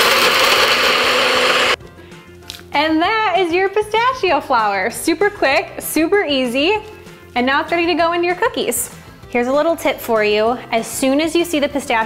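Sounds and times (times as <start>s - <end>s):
blender grinding nuts: 0.0s - 1.8s
soft background music: 1.8s - 12.0s.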